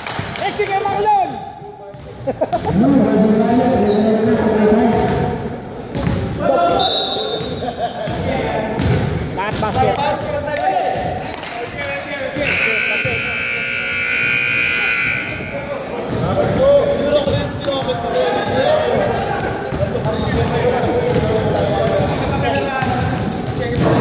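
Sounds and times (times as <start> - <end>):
players' voices: 0.2 - 24.0
scoreboard buzzer: 12.4 - 15.7.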